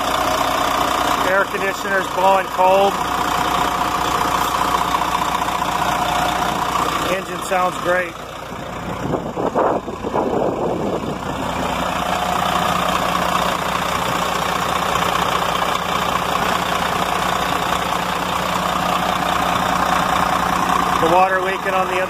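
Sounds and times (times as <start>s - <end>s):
diesel truck engine idling: 0.0s - 22.0s.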